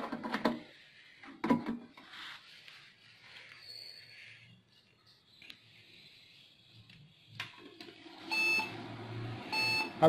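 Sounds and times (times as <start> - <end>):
short computer beeps: 8.3 - 8.7, 9.5 - 10.0.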